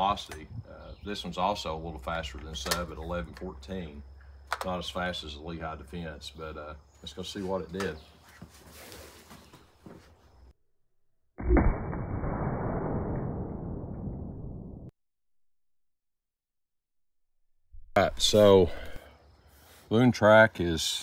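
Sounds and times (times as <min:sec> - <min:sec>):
deep slowed gunshot boom: 0:11.4 - 0:14.9.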